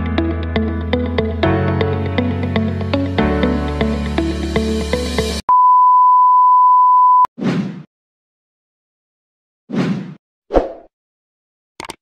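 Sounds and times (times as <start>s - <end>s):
intro music: 0.0s - 5.4s
steady test tone beep: 5.5s - 7.3s.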